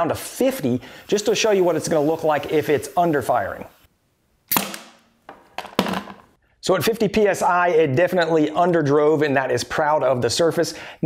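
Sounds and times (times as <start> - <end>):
nail gun firing into wood: 4.5 - 5.1
tool set down on bench: 5.3 - 6.3.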